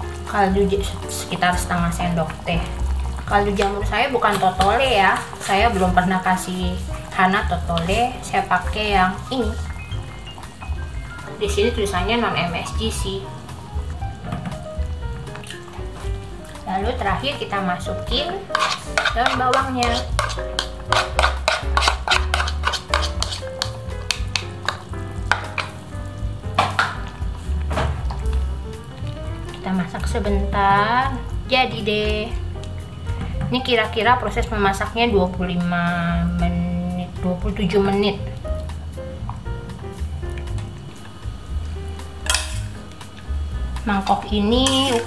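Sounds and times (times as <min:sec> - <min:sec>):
music with pulsing bass: 0:00.0 - 0:18.2, 0:19.4 - 0:44.8
utensil stirring in metal saucepan: 0:00.1 - 0:13.2, 0:15.4 - 0:25.9, 0:42.2 - 0:43.2, 0:43.8 - 0:45.0
utensil clattering against steel pot: 0:18.5 - 0:25.8, 0:42.2 - 0:42.6.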